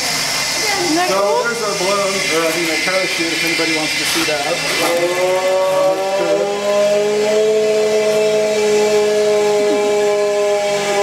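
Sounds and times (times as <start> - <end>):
gas rushing with whistling hiss: 0.0 - 11.0.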